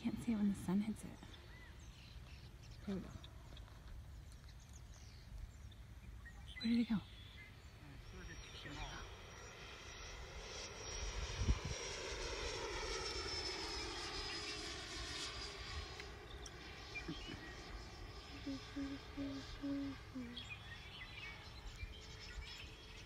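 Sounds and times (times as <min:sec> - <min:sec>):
model jet whining overhead: 0:00.0 - 0:23.0.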